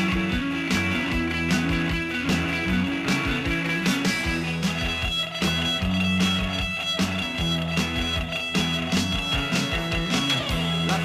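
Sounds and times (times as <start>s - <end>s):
bass guitar: 0.0s - 11.0s
electric guitar playing: 0.0s - 11.0s
steady drum beat: 0.0s - 11.0s.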